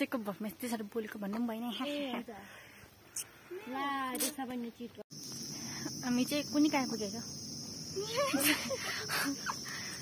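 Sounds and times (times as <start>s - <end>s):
young woman speaking: 0.0s - 2.5s, 5.8s - 7.3s.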